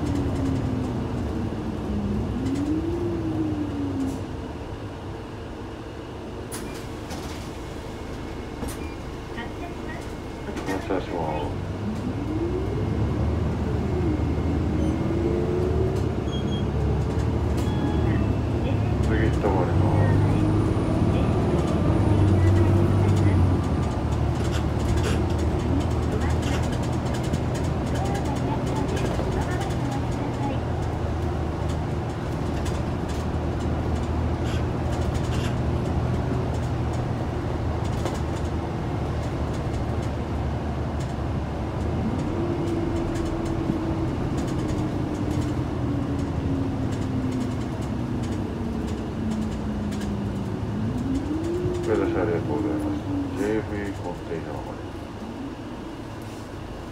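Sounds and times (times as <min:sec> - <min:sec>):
bus engine from inside cabin: 0:00.0 - 0:56.9
drivetrain whine: 0:00.0 - 0:56.9.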